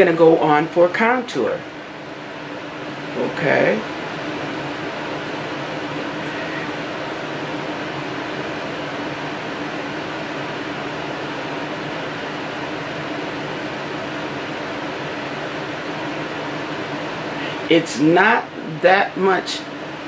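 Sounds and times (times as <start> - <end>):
low steady hum: 0.0 - 20.0.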